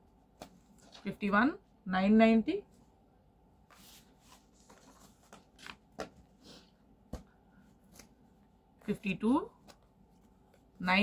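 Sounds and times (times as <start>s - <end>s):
cloth and paper rustling: 3.6s - 6.6s.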